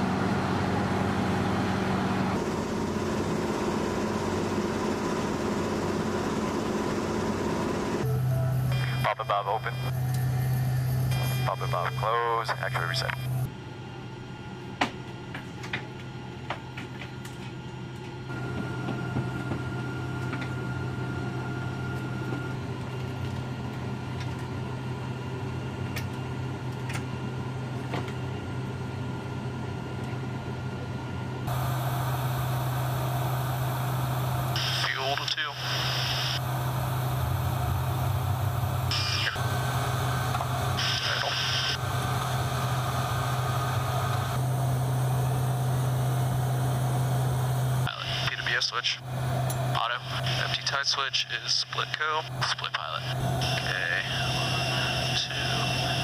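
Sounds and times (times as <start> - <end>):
aircraft engine drone: 0.0 - 56.0
hissing radio bursts: 11.2 - 13.4, 34.3 - 44.4, 47.8 - 49.0, 49.8 - 56.0.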